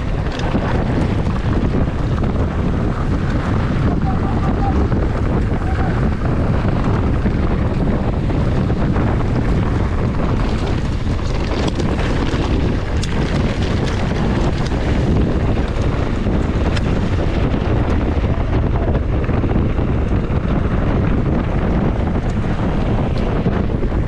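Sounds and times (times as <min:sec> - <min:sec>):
tyres rolling on gravel: 0:00.0 - 0:24.0
wind rush on microphone: 0:00.0 - 0:24.0.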